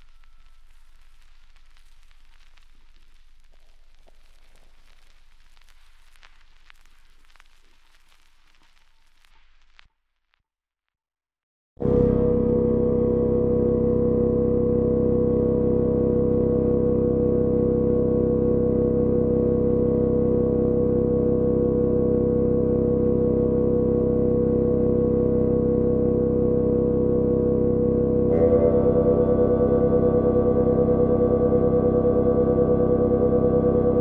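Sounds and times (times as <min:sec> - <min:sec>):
steady synthesizer chord: 0:11.8 - 0:34.0
pulsing synth layer: 0:27.4 - 0:34.0.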